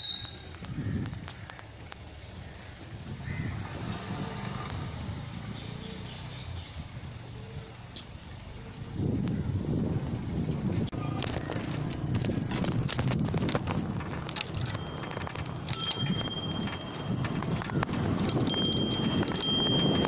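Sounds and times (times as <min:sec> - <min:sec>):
vehicle rumbling slowly: 0:00.0 - 0:20.0.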